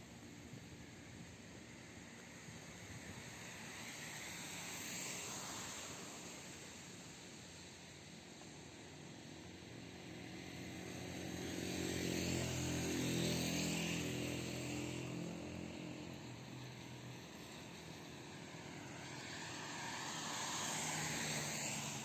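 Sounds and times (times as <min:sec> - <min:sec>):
vehicle engine hum: 0:00.0 - 0:22.0
tyre hiss on wet road: 0:00.1 - 0:22.0.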